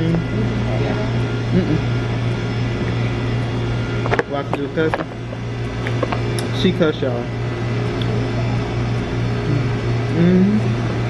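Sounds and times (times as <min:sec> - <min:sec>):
voice: 0:00.0 - 0:01.8, 0:04.1 - 0:05.1, 0:09.5 - 0:10.7
low room hum: 0:00.0 - 0:11.0.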